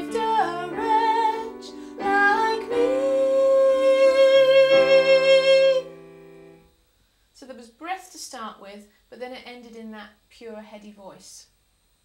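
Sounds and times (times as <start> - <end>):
electric keyboard chords: 0.0 - 6.7.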